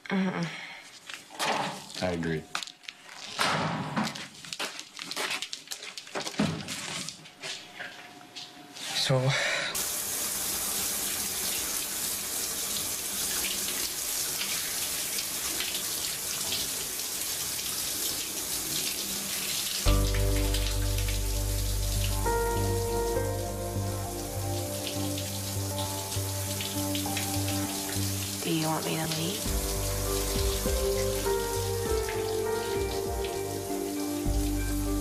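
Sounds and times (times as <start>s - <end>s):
shower water spraying: 9.8s - 35.0s
background music with low bass: 19.9s - 35.0s.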